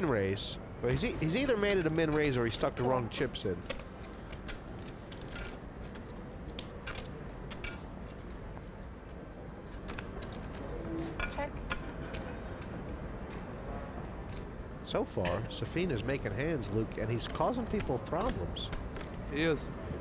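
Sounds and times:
poker chips clattering: 1.2 - 11.2.

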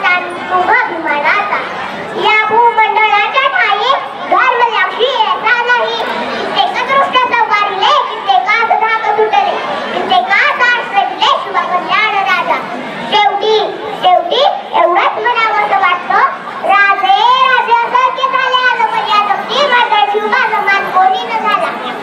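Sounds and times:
girl speaking into a microphone: 0.0 - 22.0.

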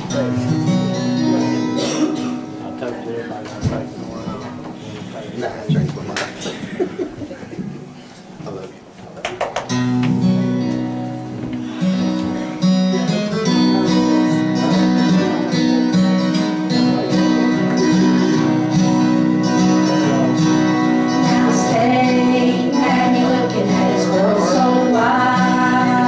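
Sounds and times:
acoustic guitars strumming: 0.0 - 8.3, 9.6 - 26.0.

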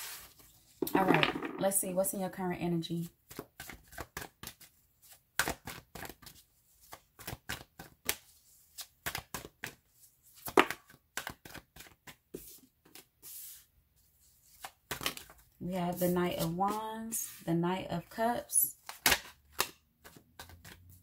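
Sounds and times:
cards being shuffled: 3.3 - 13.6, 14.4 - 17.4, 18.8 - 21.0.

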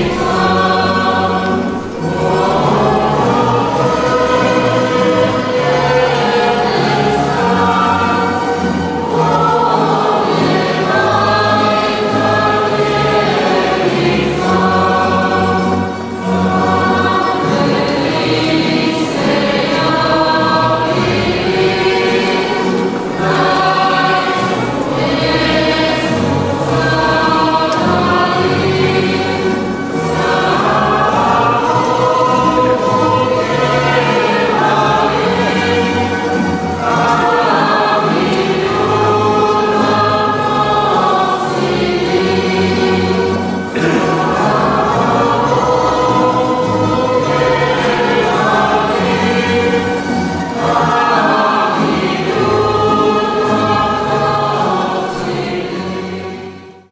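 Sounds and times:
strummed guitars: 0.0 - 56.5
youth choir singing: 0.0 - 56.9.

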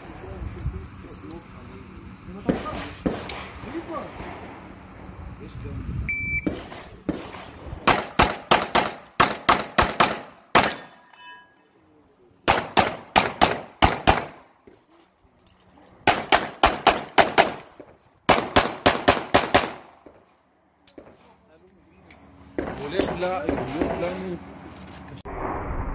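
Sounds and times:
pistol firing rapid shots: 2.5 - 3.5, 6.5 - 10.9, 12.5 - 14.4, 16.0 - 17.7, 18.3 - 19.9
shot timer beep: 6.1 - 6.5.

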